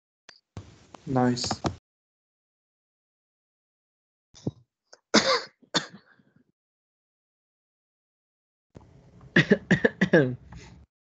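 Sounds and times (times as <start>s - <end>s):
person coughing: 5.2s - 6.2s, 9.4s - 10.4s.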